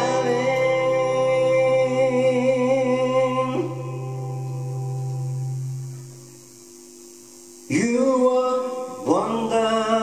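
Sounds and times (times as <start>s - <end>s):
man singing with band: 0.0s - 3.8s
acoustic guitar chord ringing: 0.0s - 10.0s.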